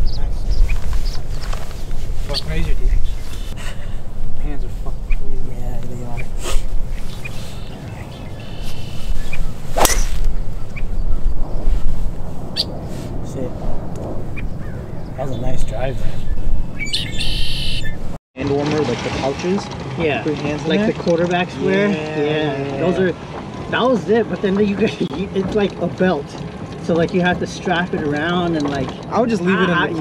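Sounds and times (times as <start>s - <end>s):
wind rumble on microphone: 0.0s - 18.2s
golf club striking ball: 8.6s - 10.9s.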